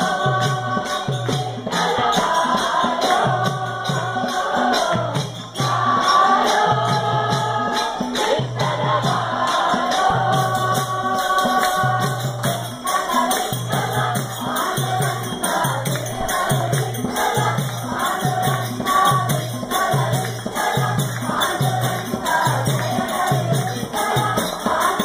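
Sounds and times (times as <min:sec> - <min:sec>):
jingling hand percussion: 0:00.0 - 0:25.0
men singing in chorus: 0:00.0 - 0:25.0.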